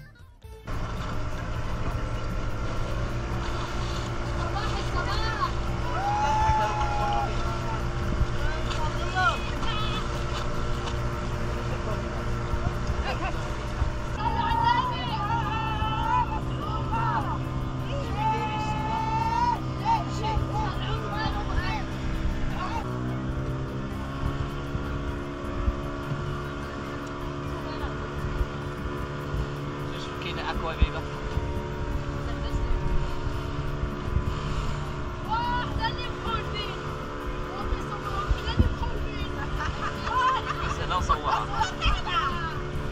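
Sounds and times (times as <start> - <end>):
vehicle engine running: 0.0 - 42.9
voices: 0.0 - 42.9.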